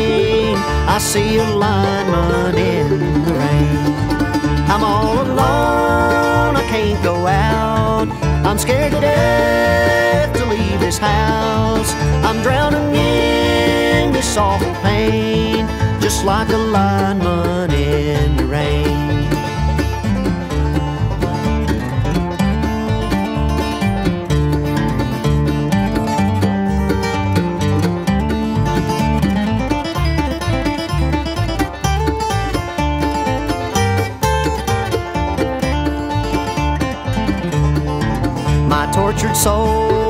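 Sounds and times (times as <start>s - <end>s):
acoustic guitar picking: 0.0s - 40.0s
banjo picking: 0.0s - 40.0s
upright bass: 0.0s - 40.0s.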